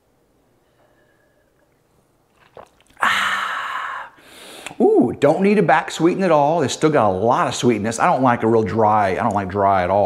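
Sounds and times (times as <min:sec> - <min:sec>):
soft breathing: 0:00.5 - 0:02.1, 0:03.0 - 0:04.8
man swallowing: 0:01.6 - 0:05.1
man exhaling ahh: 0:03.0 - 0:05.0
mouth click: 0:04.6 - 0:04.9.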